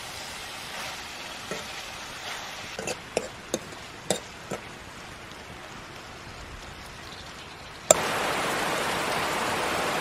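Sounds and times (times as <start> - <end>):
food sizzling in a wok: 0.0 - 10.0
metal ladle knocking on pan: 3.2 - 4.6.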